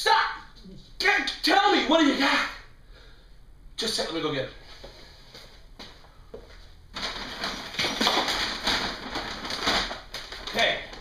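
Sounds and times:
paper bags rustling: 0:06.9 - 0:11.0.

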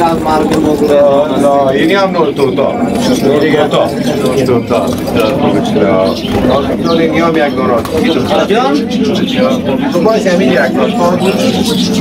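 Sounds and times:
man talking: 0:00.0 - 0:12.0
pigeons cooing: 0:00.0 - 0:12.0.

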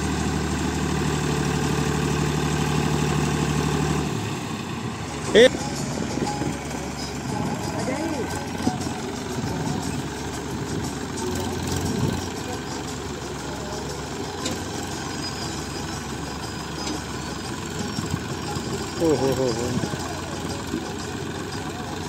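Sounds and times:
tractor diesel engine running: 0:00.0 - 0:22.0
faint voices: 0:05.0 - 0:22.0.

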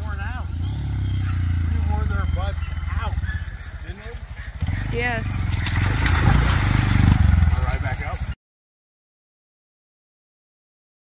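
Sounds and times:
small motorcycle engine running: 0:00.0 - 0:08.4.

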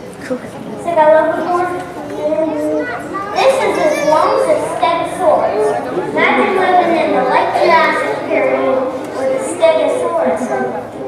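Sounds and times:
children talking over one another: 0:00.0 - 0:11.0.

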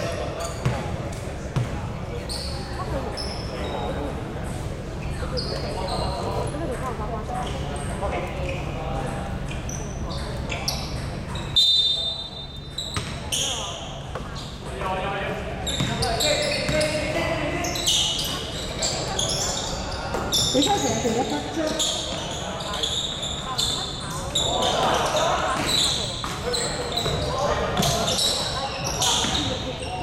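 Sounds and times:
sneakers squeaking on court: 0:00.0 - 0:06.8, 0:07.4 - 0:14.9, 0:15.6 - 0:30.0
referee's whistle: 0:11.6 - 0:13.0
basketball bouncing: 0:13.0 - 0:13.2, 0:15.8 - 0:16.1.

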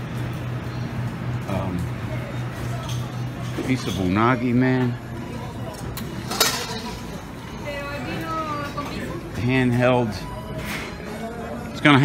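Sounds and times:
restaurant chatter: 0:00.0 - 0:12.0
dishes clinking: 0:02.7 - 0:05.0, 0:05.7 - 0:07.3.

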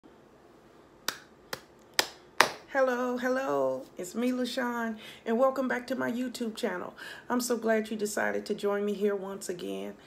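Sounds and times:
person clapping hands: 0:01.1 - 0:02.7.

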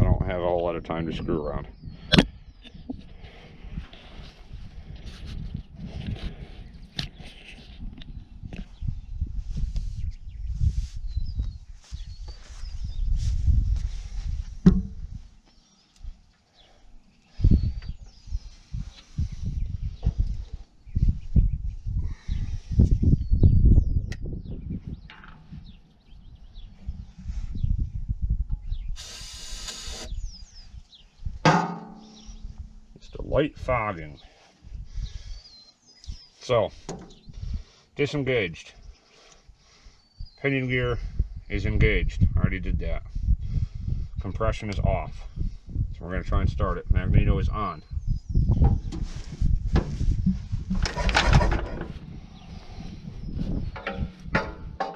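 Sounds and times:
gusty wind on microphone: 0:01.0 - 0:15.4, 0:17.3 - 0:31.5, 0:34.6 - 0:35.4, 0:36.0 - 0:37.8, 0:41.0 - 0:54.9.

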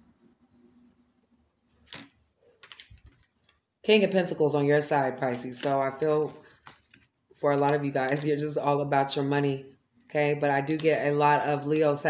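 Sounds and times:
woman speaking: 0:03.9 - 0:06.4, 0:07.4 - 0:12.0.

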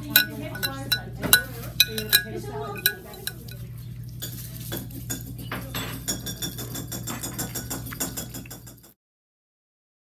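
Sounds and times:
low steady hum: 0:00.0 - 0:06.6
metal spoon clinking ceramic bowl: 0:00.0 - 0:08.9.

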